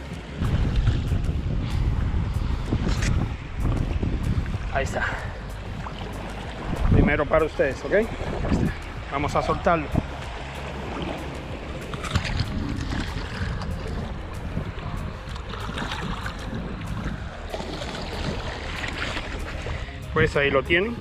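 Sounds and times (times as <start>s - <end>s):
water splashing: 0.0s - 20.1s
small waves washing on shore: 0.0s - 21.0s
wind on microphone: 0.0s - 21.0s.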